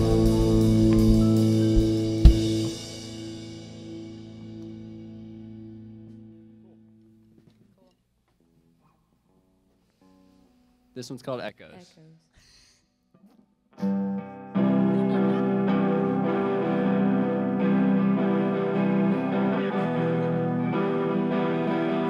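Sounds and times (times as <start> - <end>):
sharp drum hit: 0.0 - 4.4
drum kit: 0.0 - 5.8
electric guitar chord ringing: 0.0 - 7.1, 13.8 - 22.0.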